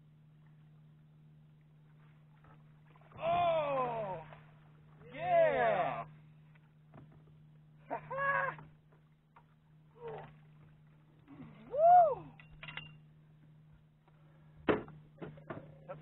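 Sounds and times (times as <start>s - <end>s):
steady low hum: 0.0s - 16.0s
fisherman shouting: 3.2s - 4.4s, 5.0s - 6.2s, 7.9s - 8.6s, 11.6s - 12.4s.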